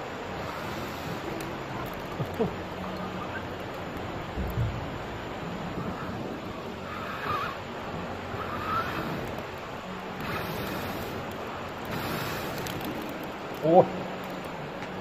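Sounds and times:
river flowing: 0.0s - 15.0s
man blowing on charcoal: 0.3s - 2.6s, 5.5s - 13.2s.

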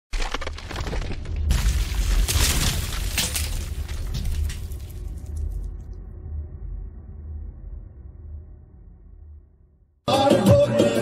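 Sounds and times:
stone cracking and debris clatter: 0.1s - 5.9s
deep rumble: 0.8s - 9.9s.

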